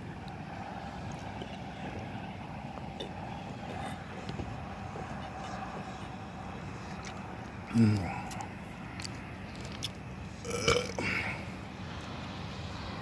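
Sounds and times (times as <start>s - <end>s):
low rumble with faint hum: 0.0s - 13.0s
person swallowing: 10.4s - 11.2s.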